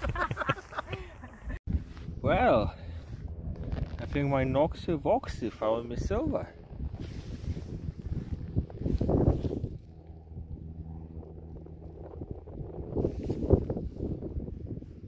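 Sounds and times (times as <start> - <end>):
steady low hum: 0.3 - 15.0
wind buffeting microphone: 1.7 - 15.0
hand digging and scraping soil: 3.0 - 4.6, 6.9 - 10.2.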